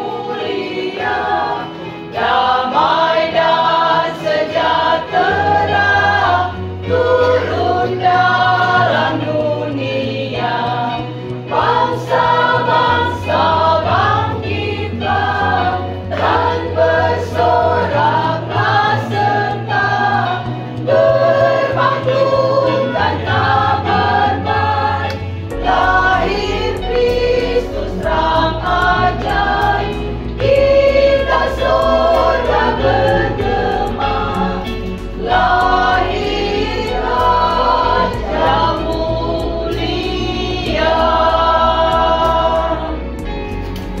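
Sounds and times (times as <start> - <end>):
women singing a hymn: 0.0 - 43.4
electronic keyboard bass notes: 4.6 - 44.0.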